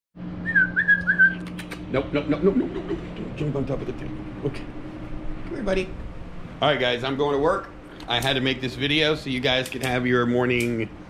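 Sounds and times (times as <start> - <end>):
steady low hum: 0.2 - 11.0
short whistle: 0.4 - 1.6.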